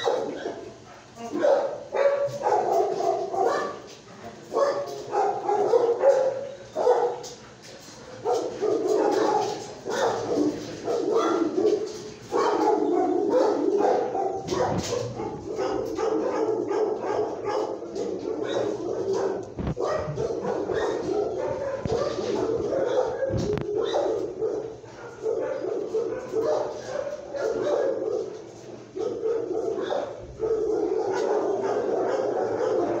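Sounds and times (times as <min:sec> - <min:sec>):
dogs barking and yipping: 0:00.0 - 0:33.0.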